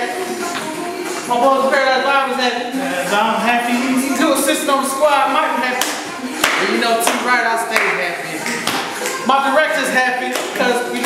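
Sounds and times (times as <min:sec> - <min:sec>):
men singing: 0:00.0 - 0:11.0
hand claps: 0:05.8 - 0:09.2, 0:10.3 - 0:11.0.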